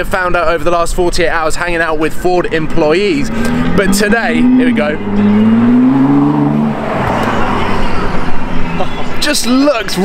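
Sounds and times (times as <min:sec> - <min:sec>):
car driving past at speed: 0:03.2 - 0:09.2.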